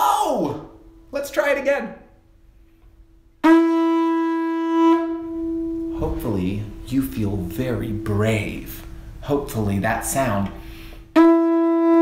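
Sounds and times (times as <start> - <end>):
conch shell horn note: 3.4 - 6.8, 11.1 - 12.0.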